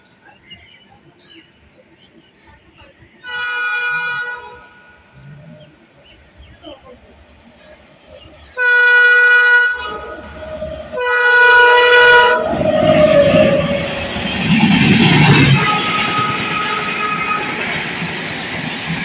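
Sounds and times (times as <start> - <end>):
train rushing and rumbling: 0.0 - 19.0
locomotive horn blasts: 3.2 - 5.2, 8.6 - 14.6, 15.3 - 17.9.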